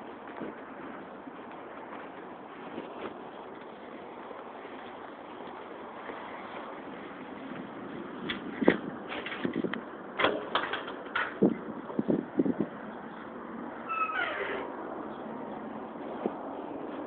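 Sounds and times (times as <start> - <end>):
light knocks and clatter: 8.2 - 11.5.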